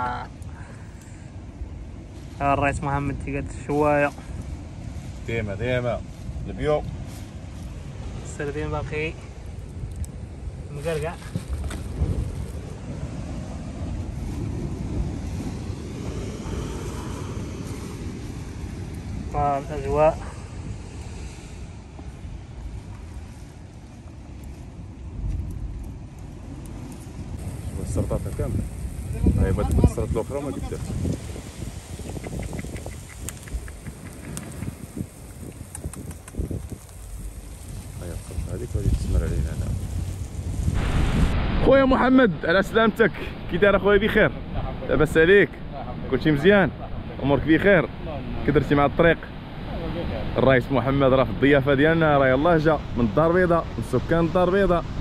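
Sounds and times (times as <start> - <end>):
wind buffeting microphone: 0.0 - 55.0
surf: 26.5 - 55.0.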